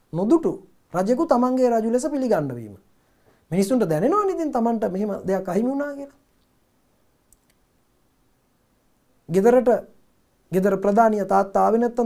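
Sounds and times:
faint short clicks: 7.3s - 7.6s
man's voice: 10.5s - 12.0s.

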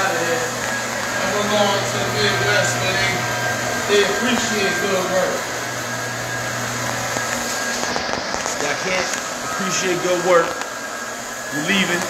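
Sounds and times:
low hum: 0.0s - 8.4s
floor machine whirring: 0.0s - 12.0s.

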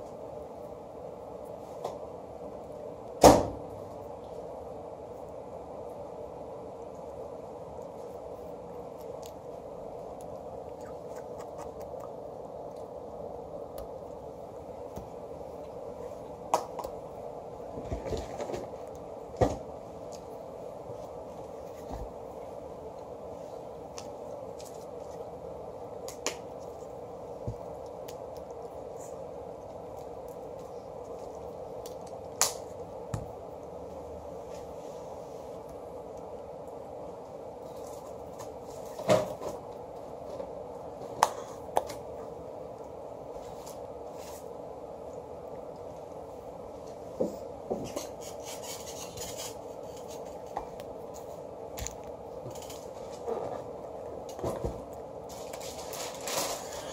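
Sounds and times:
room hum: 0.0s - 56.9s.

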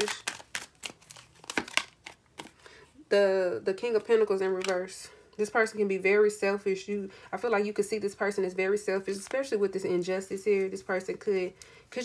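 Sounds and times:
cards rustling: 0.0s - 2.7s.

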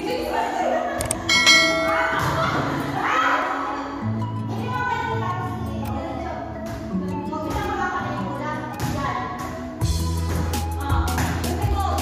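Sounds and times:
background music: 0.0s - 12.0s
bell ding: 1.3s - 2.8s.

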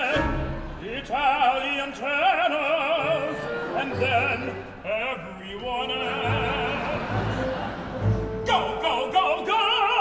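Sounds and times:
operatic voices singing: 0.0s - 10.0s.

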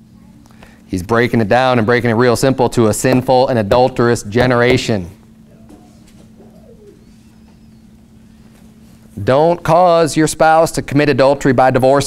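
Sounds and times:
low electrical hum: 0.0s - 12.0s
faint cooing call: 5.4s - 8.4s.

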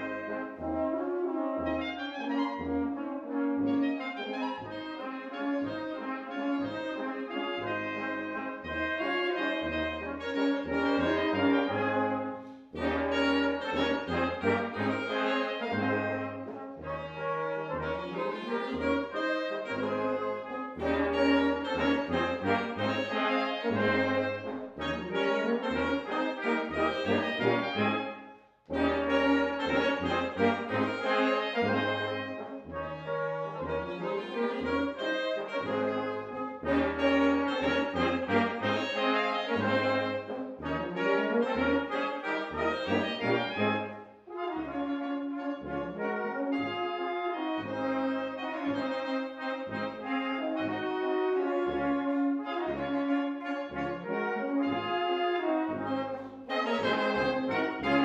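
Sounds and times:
brass band playing a waltz: 0.0s - 58.0s
tuba bass beat: 0.0s - 58.0s.

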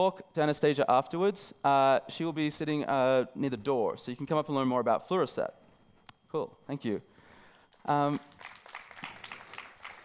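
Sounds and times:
audience applauding: 8.0s - 10.0s.

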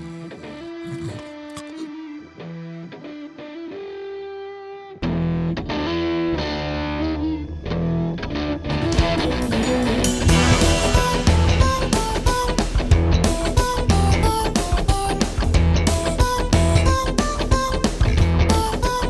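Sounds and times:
distorted electric guitar music: 0.0s - 19.0s
sharp hits: 8.8s - 14.1s.

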